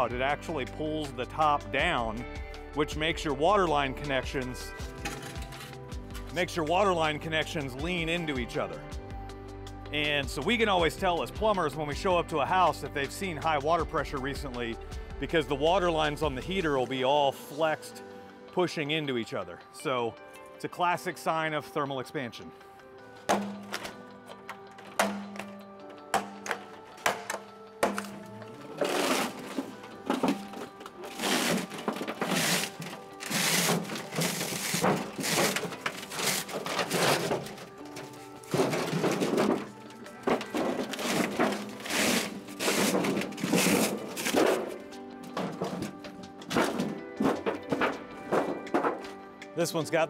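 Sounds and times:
background music: 0.0 - 50.0
sheet metal scraping and tearing: 4.9 - 5.8, 26.4 - 49.2.

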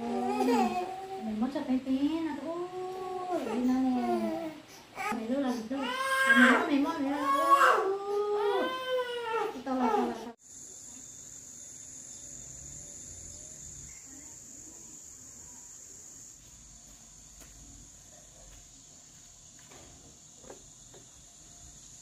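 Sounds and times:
baby crying: 0.0 - 1.3, 2.7 - 10.2
insect drone: 9.6 - 22.0.

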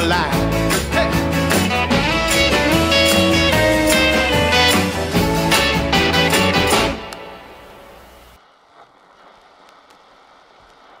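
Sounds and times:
rock band final chord: 0.4 - 8.0
vinyl record surface noise: 4.9 - 11.0.

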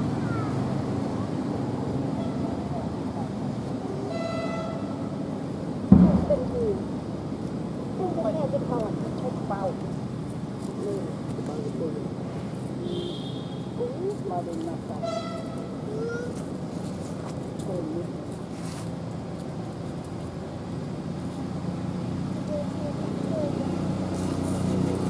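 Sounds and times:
engine hum: 0.0 - 25.0.

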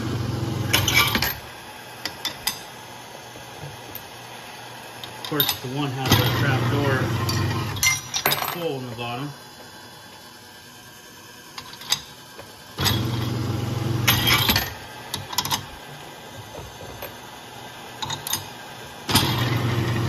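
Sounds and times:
garage door opener motor running: 0.0 - 1.7, 5.8 - 7.9, 11.7 - 20.0.

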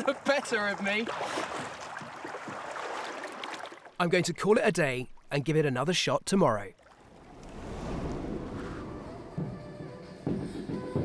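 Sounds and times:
surf noise: 6.9 - 9.9
wind rushing: 7.0 - 10.2.

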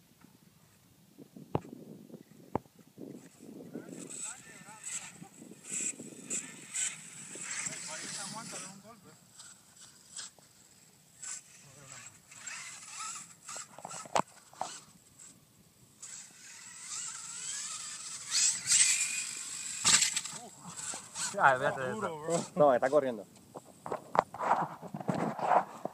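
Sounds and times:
rc truck driving on sand: 1.6 - 25.9
people talking: 3.7 - 5.4, 7.4 - 9.2, 20.3 - 23.3.

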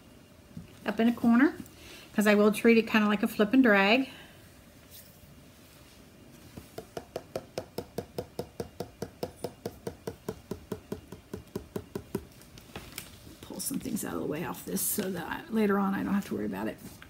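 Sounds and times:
fingertip tapping plastic cup: 6.8 - 12.3.

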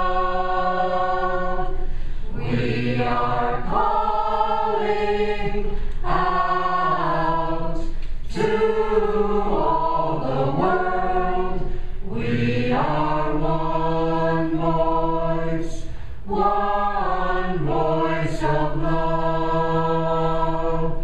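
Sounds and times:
mixed choir singing a cappella: 0.0 - 21.0.

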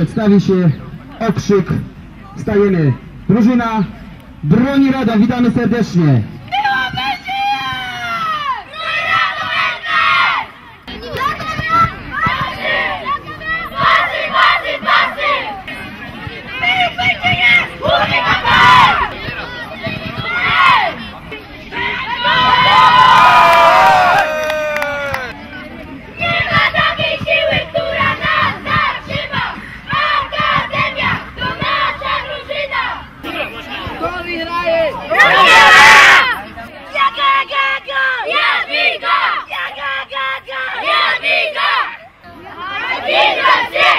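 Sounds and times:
boys shouting a chant: 6.6 - 25.3, 26.2 - 43.9
boys shouting in unison: 21.7 - 25.3, 33.7 - 43.9.

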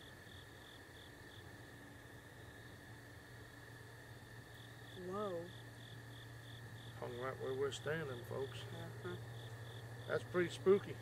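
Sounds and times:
insects droning: 0.0 - 11.0
low steady hum: 0.0 - 11.0.

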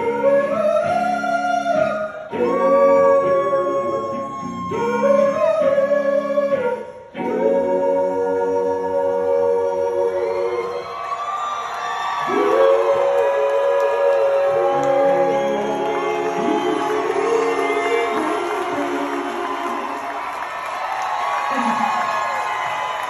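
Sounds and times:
audience cheering and whooping: 10.2 - 23.0.

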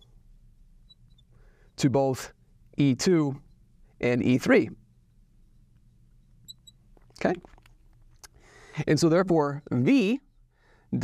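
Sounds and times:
low steady hum: 0.0 - 11.0
marker squeaking on glass: 0.8 - 1.7, 5.6 - 7.7.

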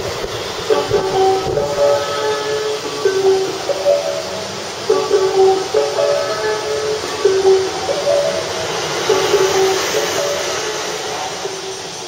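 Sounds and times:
steady background noise: 0.0 - 12.0
chime melody over loudspeakers: 2.8 - 12.0.

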